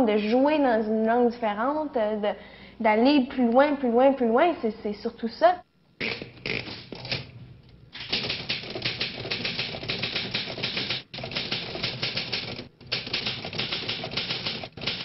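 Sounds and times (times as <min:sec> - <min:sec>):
fast clattering clicks: 0:08.0 - 0:15.0.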